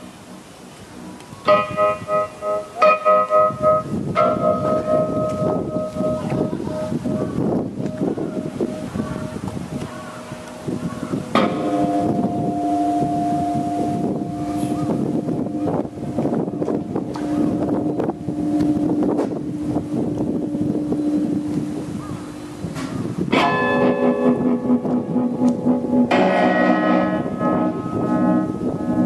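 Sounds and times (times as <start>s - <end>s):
droning electric guitar: 0.1s - 29.0s.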